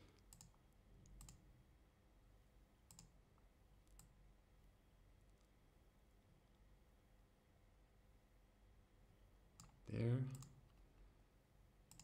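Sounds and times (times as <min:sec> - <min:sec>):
faint computer clicks: 0:00.1 - 0:01.4, 0:02.9 - 0:03.2.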